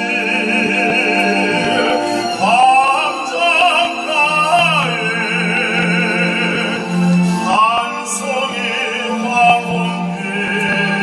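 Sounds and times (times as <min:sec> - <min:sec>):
string orchestra accompaniment: 0:00.0 - 0:11.0
tenor singing with vibrato: 0:00.0 - 0:11.0.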